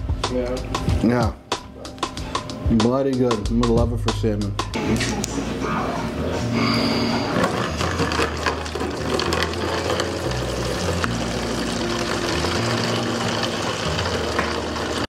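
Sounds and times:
background music with bass line: 0:00.0 - 0:05.1, 0:07.8 - 0:15.0
water pouring into plastic jug: 0:07.7 - 0:15.0.

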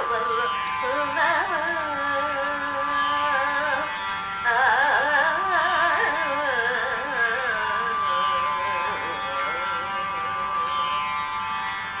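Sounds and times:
woman singing: 0:00.0 - 0:10.9.

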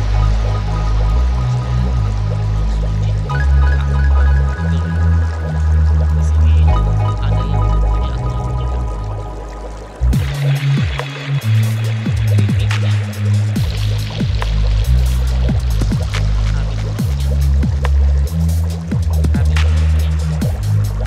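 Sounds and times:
instrumental music with bass: 0:00.0 - 0:21.0.

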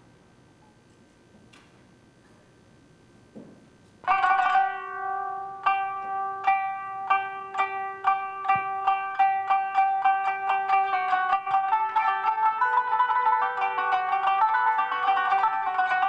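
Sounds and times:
plucked string instrument music: 0:04.0 - 0:16.0.

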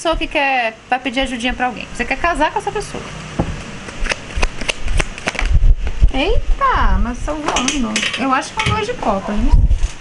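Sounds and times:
cards being shuffled: 0:03.8 - 0:05.6.

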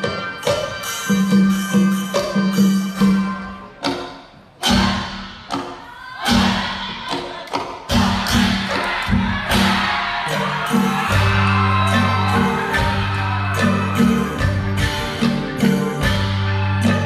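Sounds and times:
heavy accented beats: 0:00.0 - 0:17.0
folk ensemble playing: 0:09.8 - 0:17.0.

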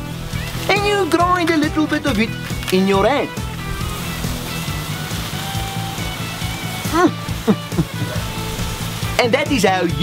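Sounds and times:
background music: 0:00.0 - 0:10.0
man murmuring mm: 0:07.5 - 0:08.2.

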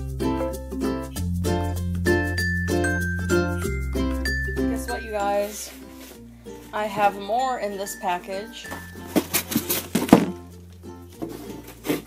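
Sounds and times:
background music: 0:00.0 - 0:12.0
pack thumping on wooden table: 0:09.1 - 0:10.4.

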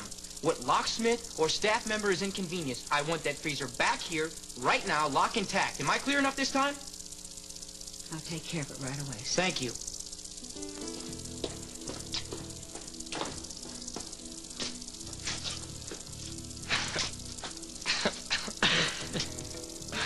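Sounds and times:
steady hiss: 0:00.0 - 0:20.0
soft underscore music: 0:10.3 - 0:20.0
brief hissing bursts: 0:14.5 - 0:20.0.

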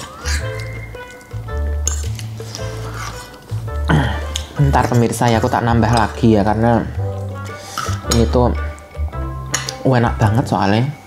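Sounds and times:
cutlery clinking on plate: 0:00.0 - 0:00.8, 0:01.8 - 0:03.4, 0:09.5 - 0:09.8
background music with bass line: 0:00.0 - 0:11.0.

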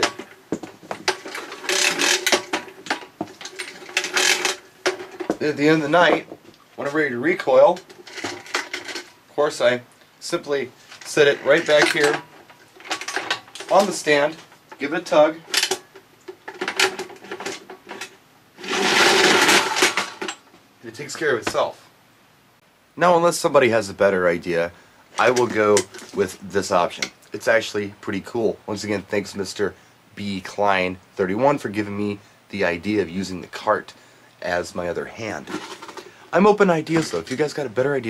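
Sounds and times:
cord reel whirring rattle: 0:00.0 - 0:05.4, 0:16.4 - 0:20.4
extension cord paying out: 0:00.0 - 0:06.3, 0:07.4 - 0:20.4.

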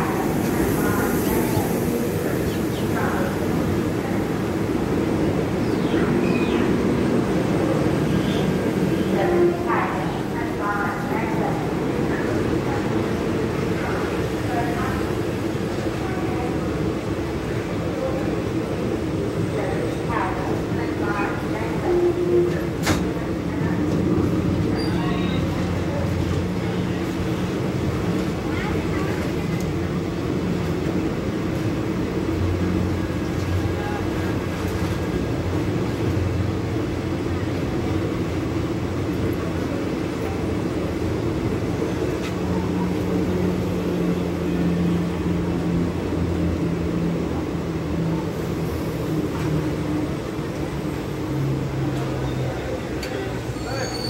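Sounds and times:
train coaches rolling past: 0:00.0 - 0:54.0.

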